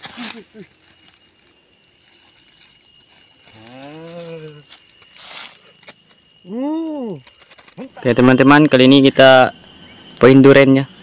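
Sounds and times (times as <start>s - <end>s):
high-pitched insect drone: 0.0s - 11.0s
man humming: 3.5s - 4.7s, 6.5s - 7.2s.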